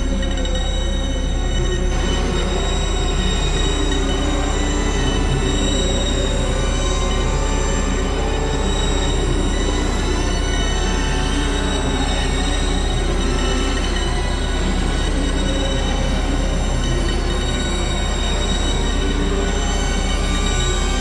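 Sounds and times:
constant low hum: 0:00.0 - 0:21.0
harsh electronic noise drone: 0:00.0 - 0:21.0
sustained high tones: 0:00.0 - 0:21.0.

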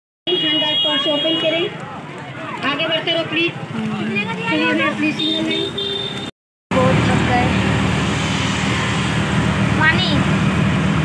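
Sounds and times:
road and traffic noise: 0:00.3 - 0:11.0
rickshaw engine running: 0:01.9 - 0:11.0.

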